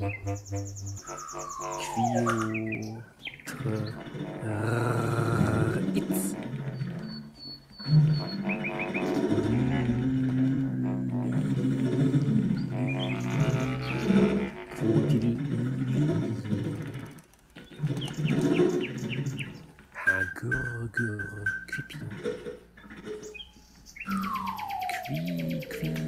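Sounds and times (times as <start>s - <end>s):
bass clarinet playing low notes: 0.0s - 3.0s, 7.9s - 16.1s
high chirping bird-like figures: 0.0s - 26.0s.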